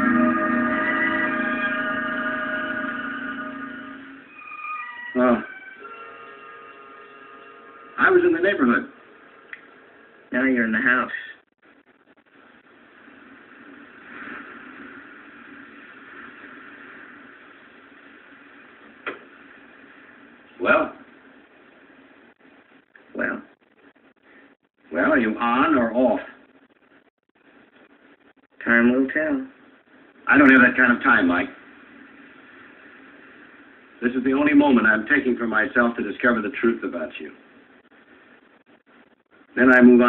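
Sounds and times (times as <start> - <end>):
faint steady background noise: 0.0 - 40.0
faint steady hiss: 0.0 - 40.0.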